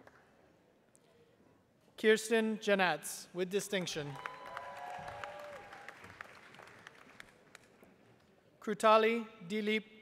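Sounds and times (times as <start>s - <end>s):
audience applause: 4.1s - 7.4s.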